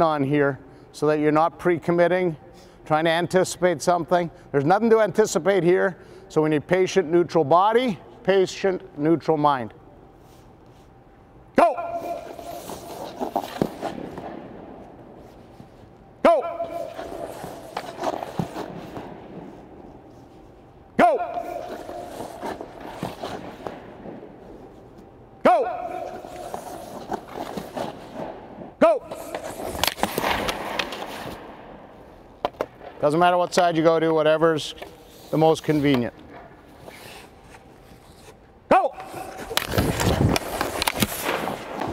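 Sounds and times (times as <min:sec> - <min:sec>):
person shouting: 0:11.6 - 0:12.3, 0:16.2 - 0:16.8, 0:21.0 - 0:21.7, 0:25.4 - 0:26.1
skates scraping across ice: 0:12.0 - 0:15.9, 0:16.6 - 0:31.6, 0:36.7 - 0:38.4, 0:39.0 - 0:41.9.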